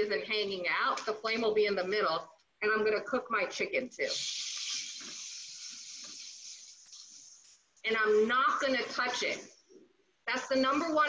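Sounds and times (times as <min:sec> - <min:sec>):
chicken sizzling in hot oil: 0:04.1 - 0:06.6.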